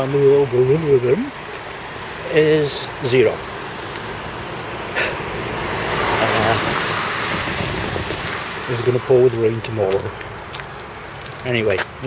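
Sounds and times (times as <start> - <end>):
car passing on road: 0.0 - 12.0.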